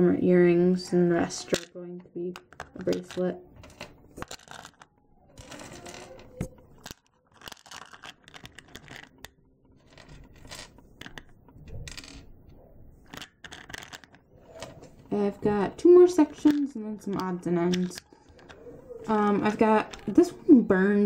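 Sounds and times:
charms rattling in plastic box: 0:02.4 - 0:12.3, 0:13.0 - 0:15.1, 0:15.8 - 0:20.3
rustling and scraping handling noise: 0:02.4 - 0:20.4.

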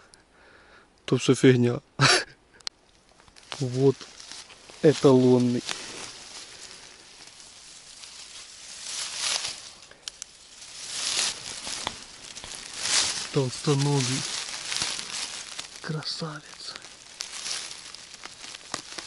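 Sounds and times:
dry grass and leaves rustling: 0:02.0 - 0:19.0.

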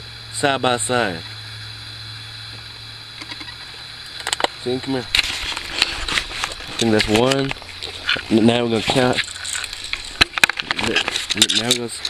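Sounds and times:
plastic bottle crinkling: 0:05.2 - 0:11.7.

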